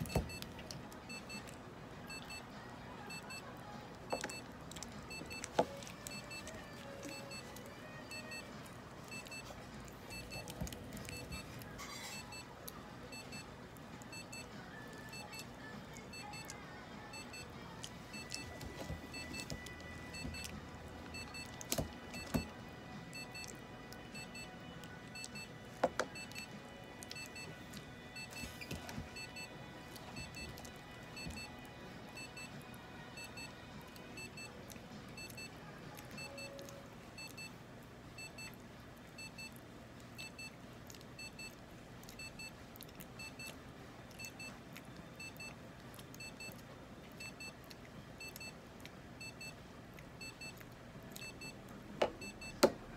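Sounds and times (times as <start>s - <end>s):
faint electronic beeps in pairs: 0.0s - 3.5s, 10.1s - 13.5s.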